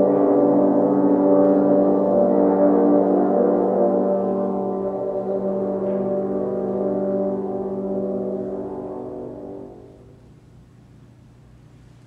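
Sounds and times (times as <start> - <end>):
french horn ensemble chord: 0.0 - 10.4.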